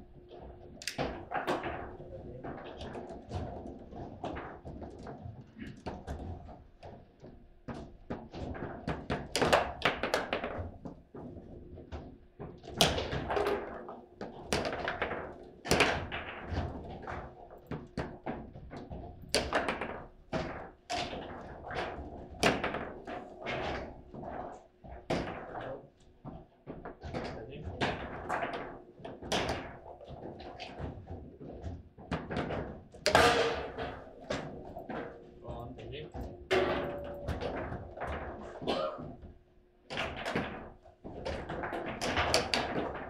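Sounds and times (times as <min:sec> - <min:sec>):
table football knocks and clacks: 0:00.0 - 0:43.0.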